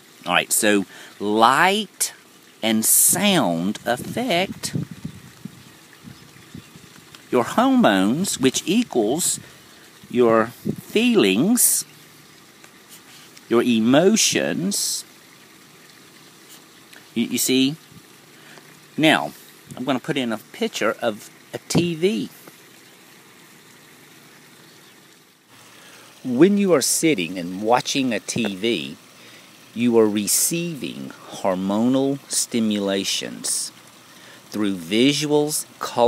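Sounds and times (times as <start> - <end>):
low background hiss: 0.0 - 36.0.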